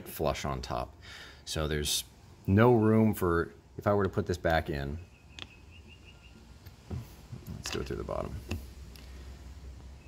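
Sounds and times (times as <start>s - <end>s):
high chirps: 4.8s - 6.7s.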